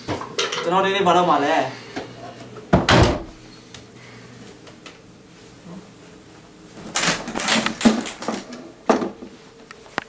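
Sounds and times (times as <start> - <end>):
door shutting with heavy thump: 2.8 - 3.4.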